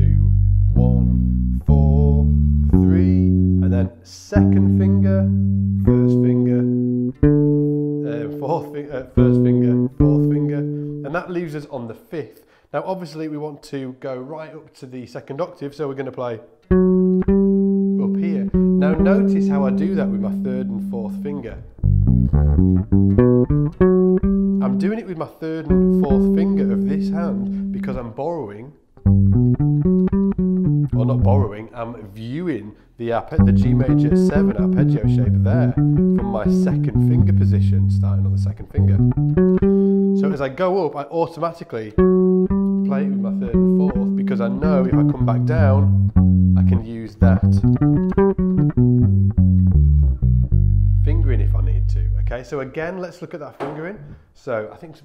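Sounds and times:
electric bass arpeggio: 0:00.0 - 0:11.2, 0:16.7 - 0:28.1, 0:29.0 - 0:31.6, 0:33.4 - 0:40.5, 0:41.9 - 0:52.4.

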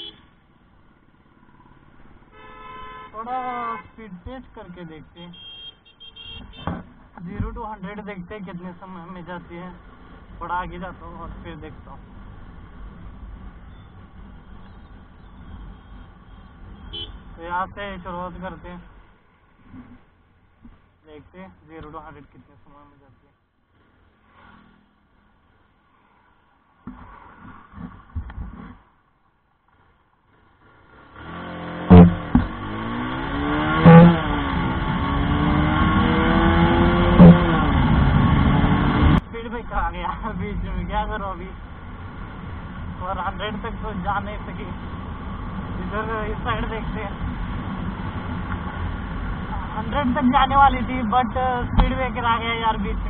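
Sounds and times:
motorcycle engine accelerating: 0:30.6 - 0:39.2.

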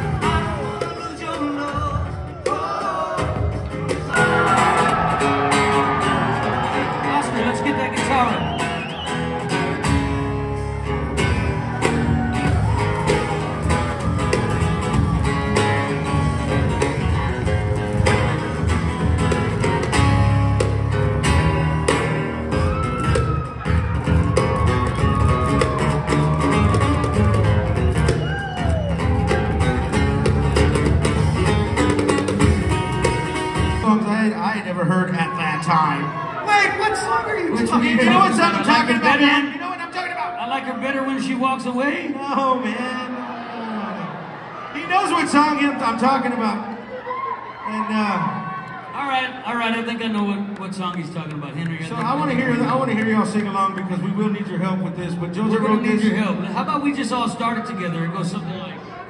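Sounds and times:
acoustic band music: 0:00.0 - 0:59.0
sliding guitar lead line: 0:03.2 - 0:34.2.

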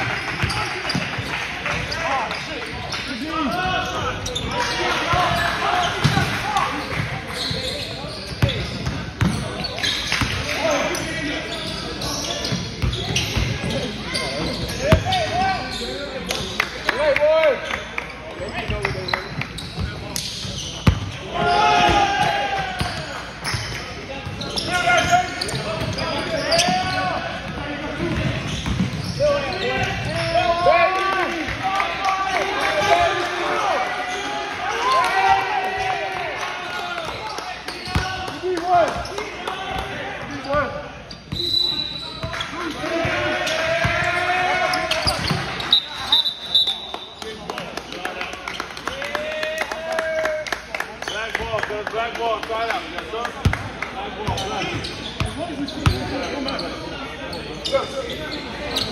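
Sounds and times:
echoing voices in a hall: 0:00.0 - 0:58.9
basketball bouncing: 0:06.0 - 0:06.3, 0:08.8 - 0:09.4.

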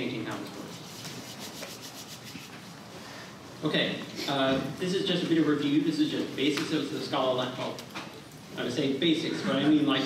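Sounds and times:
light scratching: 0:00.6 - 0:02.7
faint rubbing: 0:00.7 - 0:02.8.

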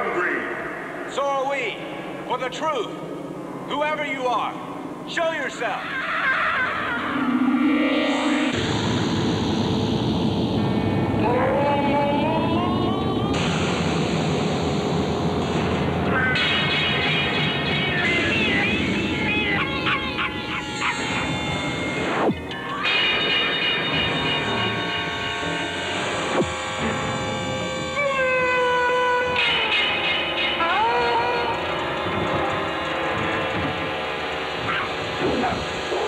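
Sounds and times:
sharp hits: 0:06.7 - 0:28.0.

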